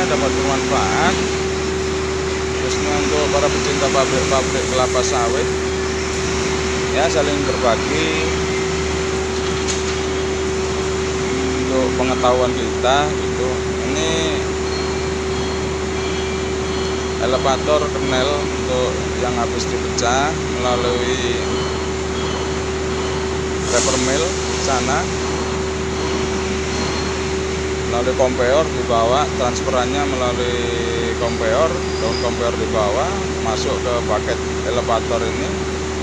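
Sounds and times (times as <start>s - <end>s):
electric motor hum: 0.0s - 28.2s
mill machinery running: 0.0s - 36.0s.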